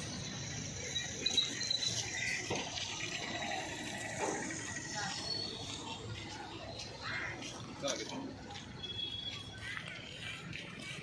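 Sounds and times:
roadside background hiss: 0:00.0 - 0:11.0.

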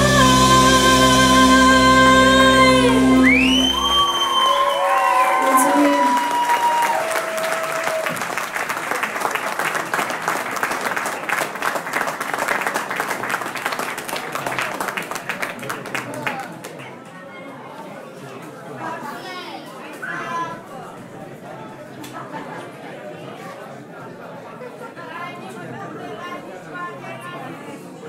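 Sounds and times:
rock band chord with vocals: 0:00.0 - 0:05.2
audience applauding: 0:03.2 - 0:16.9.

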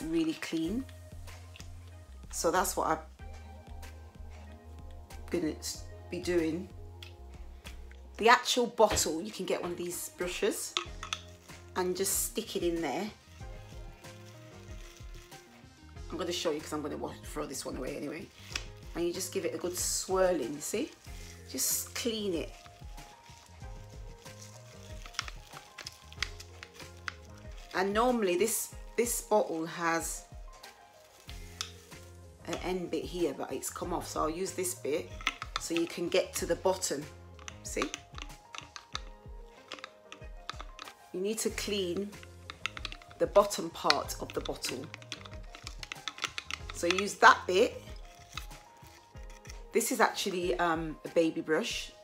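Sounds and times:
soft background music: 0:00.0 - 0:52.0
bottle brush scratching plastic: 0:09.8 - 0:49.9.

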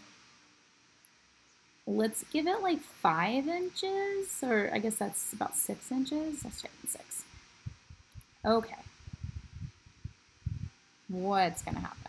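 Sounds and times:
soft low thumps: 0:07.6 - 0:10.8.

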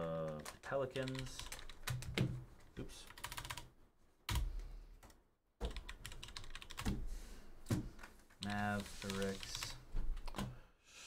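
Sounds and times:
computer keyboard typing: 0:00.2 - 0:02.3, 0:03.0 - 0:03.7, 0:04.3 - 0:04.5, 0:05.6 - 0:07.0, 0:08.4 - 0:10.5.

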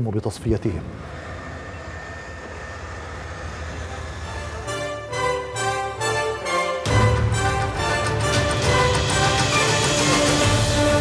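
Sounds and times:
faint high whine: 0:00.4 - 0:05.2
tank engine rumble: 0:00.9 - 0:05.0.

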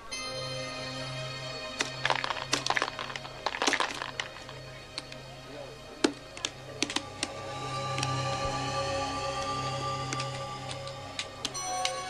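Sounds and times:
background music: 0:00.0 - 0:12.0
dice rattling in a shaker: 0:02.1 - 0:04.5.

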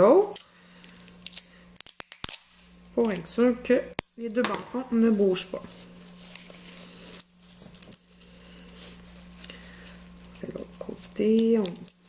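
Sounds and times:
faint steady hum: 0:00.0 - 0:12.0
plastic sheet rustling and crinkling: 0:04.2 - 0:12.0.

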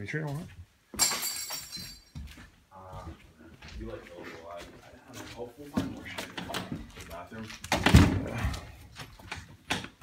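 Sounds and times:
glass breaking: 0:01.0 - 0:02.1.

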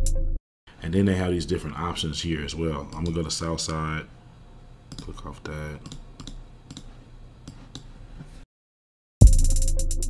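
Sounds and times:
computer mouse clicks: 0:05.8 - 0:07.9.

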